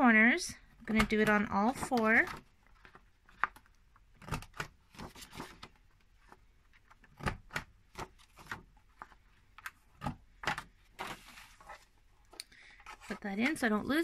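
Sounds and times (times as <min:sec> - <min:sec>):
paper rustling: 0:01.7 - 0:13.7.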